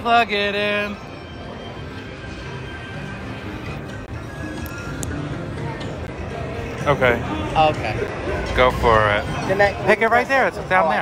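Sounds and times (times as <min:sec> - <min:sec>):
faint crowd chatter: 0:00.8 - 0:11.0.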